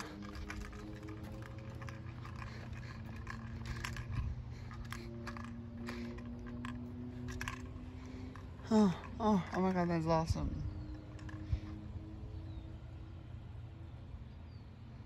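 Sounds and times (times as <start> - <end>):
low steady rumble: 0.0 - 15.0
soft hum: 0.0 - 15.0.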